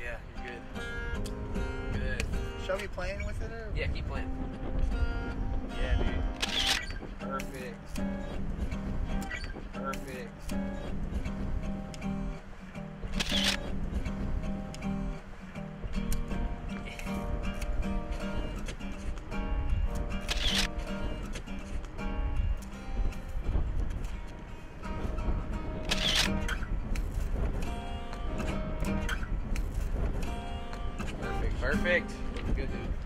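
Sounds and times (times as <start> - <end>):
acoustic guitar playing: 0.0 - 33.0
camera shutter clicking: 6.4 - 6.9, 13.2 - 13.7, 20.2 - 20.8, 25.8 - 26.5.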